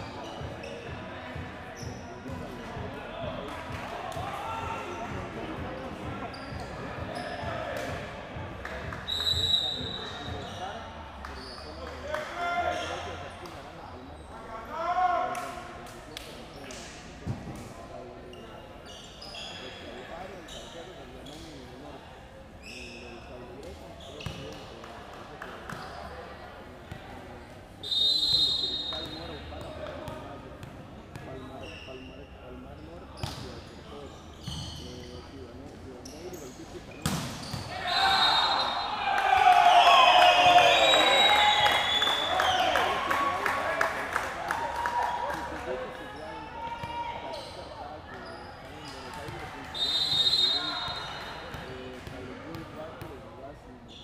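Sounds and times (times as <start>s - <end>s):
shoe squeaks: 0.0s - 1.0s, 1.7s - 2.2s, 6.2s - 7.6s, 9.1s - 10.8s, 11.4s - 11.8s, 18.3s - 21.7s, 22.6s - 24.6s, 31.2s - 38.8s, 47.0s - 51.6s
referee's whistle: 9.1s - 10.6s, 27.8s - 29.5s, 36.9s - 39.0s, 39.7s - 42.9s, 49.7s - 51.4s.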